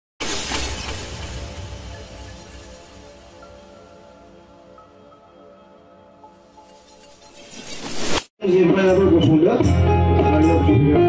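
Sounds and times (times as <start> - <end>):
glass shattering: 0.2 - 4.4, 6.3 - 8.3.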